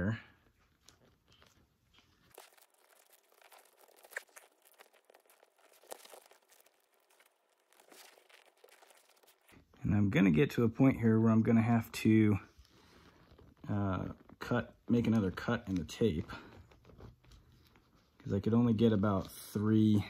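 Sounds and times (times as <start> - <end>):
tape unwinding crackle: 0.4 - 11.3, 12.4 - 20.0.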